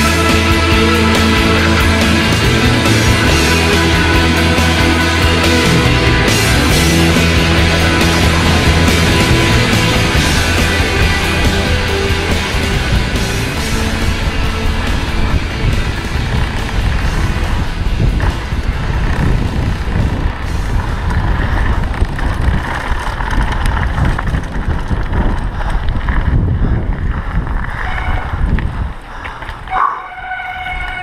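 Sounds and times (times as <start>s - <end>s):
background music: 0.0s - 19.2s
bike tyre rumble on gravel: 0.0s - 31.0s
wind buffeting: 0.0s - 31.0s
short high-pitched call: 29.7s - 31.0s.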